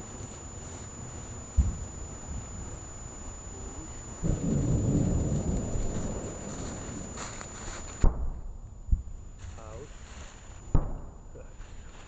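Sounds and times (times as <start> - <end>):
wind buffeting microphone: 1.4 - 8.0.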